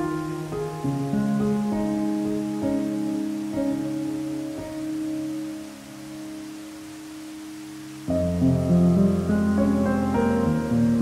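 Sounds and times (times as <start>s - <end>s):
faint rush of water: 0.0s - 11.0s
piano chord ringing: 0.0s - 11.0s.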